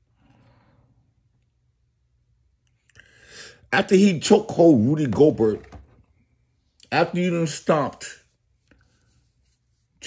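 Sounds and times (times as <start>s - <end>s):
man speaking: 3.7s - 5.8s, 6.8s - 8.3s.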